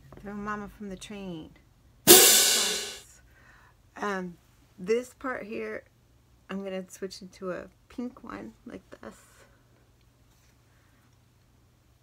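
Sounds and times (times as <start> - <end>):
cymbal crash: 2.1 - 3.0.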